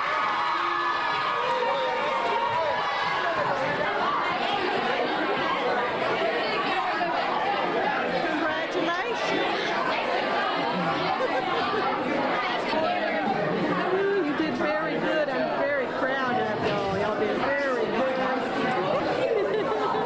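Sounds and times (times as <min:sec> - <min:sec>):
teenagers chattering: 0:00.0 - 0:20.0.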